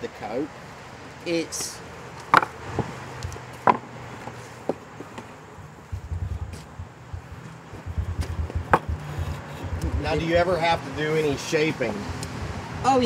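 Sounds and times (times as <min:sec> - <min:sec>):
low rumble: 0:05.6 - 0:10.4.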